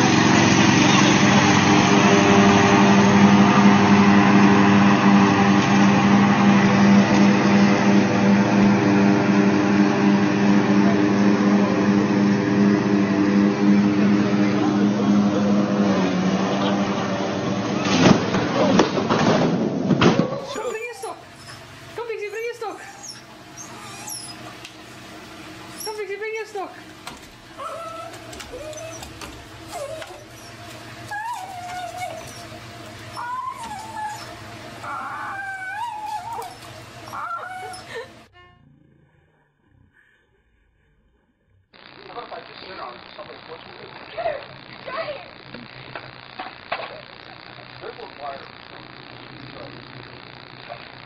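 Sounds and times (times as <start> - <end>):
ride-on lawn mower engine running: 0.0 - 38.3
small dog whining and yelping: 20.4 - 21.7, 22.7 - 24.5, 27.6 - 38.1.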